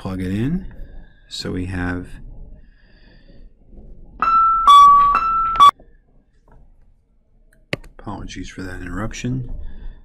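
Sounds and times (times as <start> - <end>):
electronic two-tone chime: 4.2 - 5.7.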